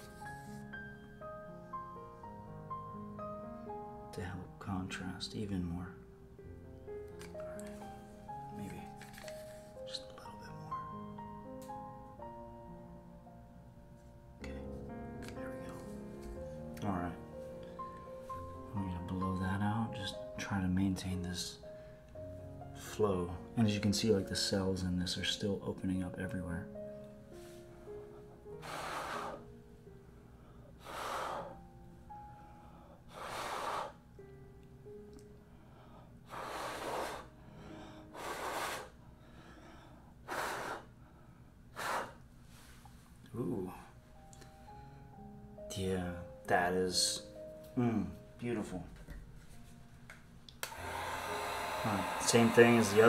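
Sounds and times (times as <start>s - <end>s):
soft background music: 0.0s - 53.0s
heat gun blowing: 28.6s - 29.4s, 33.2s - 34.0s, 36.3s - 37.3s, 38.2s - 39.0s, 40.3s - 40.9s, 50.6s - 53.0s
person blowing puffs of breath: 28.6s - 29.5s, 30.8s - 31.6s, 33.1s - 34.0s, 36.3s - 39.0s, 40.2s - 40.9s, 41.7s - 42.8s.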